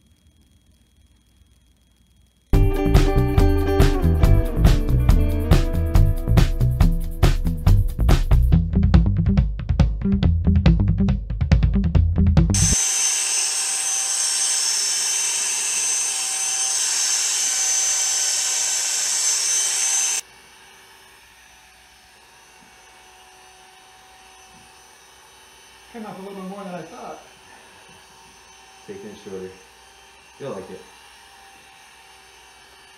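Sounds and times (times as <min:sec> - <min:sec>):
electric hair clippers buzzing: 0:02.1 - 0:07.6, 0:12.6 - 0:32.9
background music with strong beat: 0:02.6 - 0:12.6.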